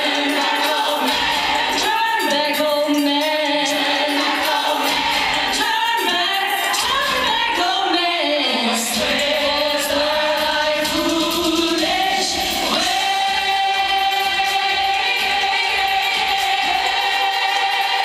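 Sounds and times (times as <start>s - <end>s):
women singing in harmony: 0.0s - 18.0s.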